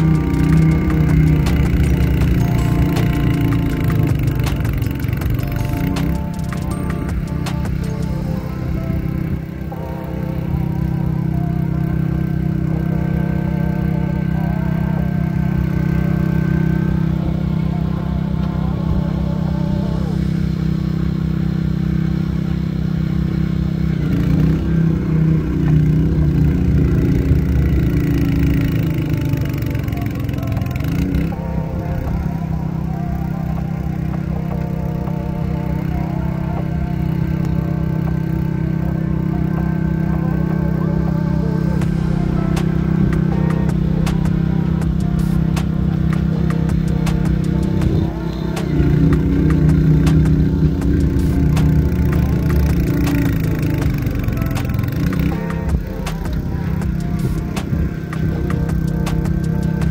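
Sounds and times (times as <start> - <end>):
background music: 0.0 - 59.9
snowblower engine running: 0.0 - 59.9.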